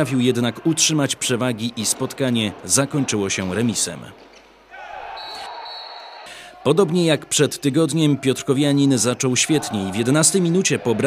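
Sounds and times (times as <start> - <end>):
crowd and player voices: 0.0 - 11.0.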